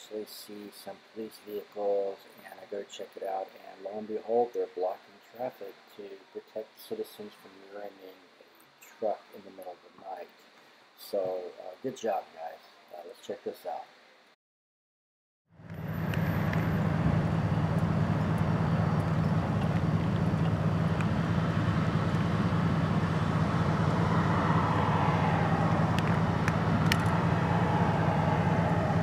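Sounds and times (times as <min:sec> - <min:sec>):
road noise: 0:15.5 - 0:29.0
vehicle engine idling: 0:15.6 - 0:29.0.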